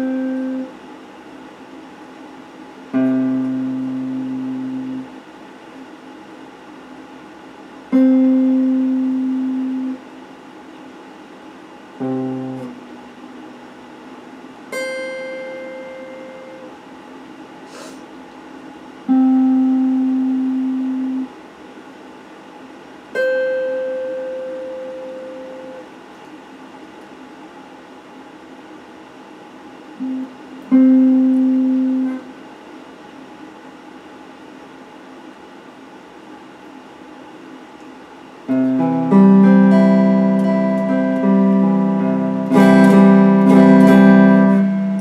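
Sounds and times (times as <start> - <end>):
electric guitar single plucked notes: 0.0 - 0.7, 2.9 - 5.1, 7.9 - 10.0, 12.0 - 13.2, 14.7 - 16.7, 19.1 - 21.3, 30.0 - 32.3, 38.5 - 45.0.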